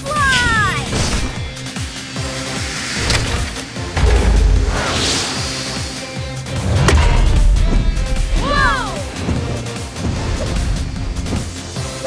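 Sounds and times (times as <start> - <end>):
action cartoon music: 0.0 - 12.0
swooshes: 0.8 - 8.4
booming impacts: 1.2 - 8.4.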